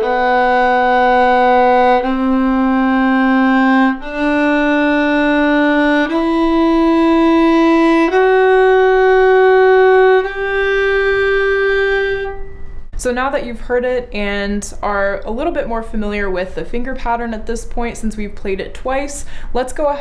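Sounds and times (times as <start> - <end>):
solo violin bowing scale: 0.0 - 12.9.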